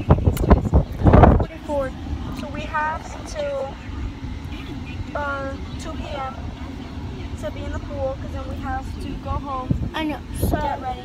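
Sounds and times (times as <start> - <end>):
girl's voice: 9.9 - 11.0.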